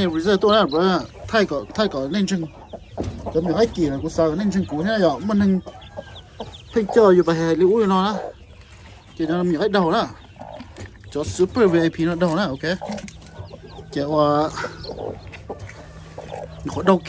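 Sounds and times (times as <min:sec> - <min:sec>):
hen calling: 0:00.0 - 0:17.0.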